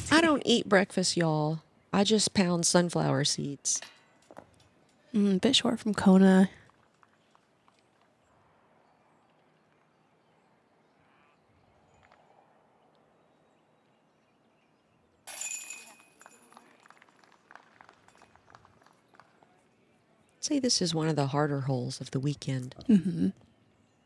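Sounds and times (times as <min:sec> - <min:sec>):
faint outdoor ambience: 0:00.0 - 0:24.0
disc hitting metal chains: 0:15.3 - 0:16.4.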